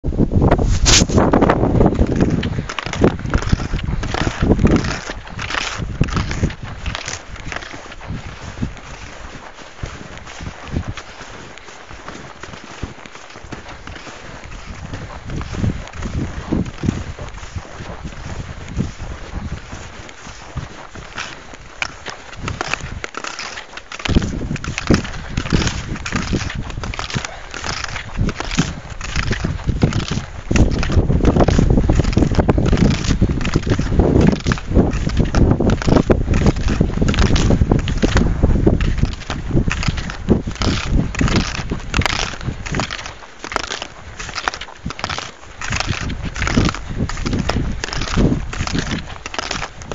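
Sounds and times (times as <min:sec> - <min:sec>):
wind buffeting microphone: 0:00.0 - 0:49.9
skis and poles scraping snow: 0:00.3 - 0:49.9.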